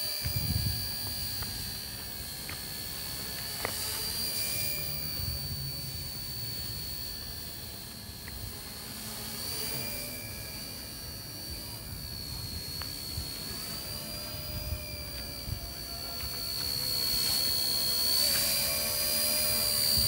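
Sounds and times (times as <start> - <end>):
rc helicopter motor whine: 0.0 - 20.0.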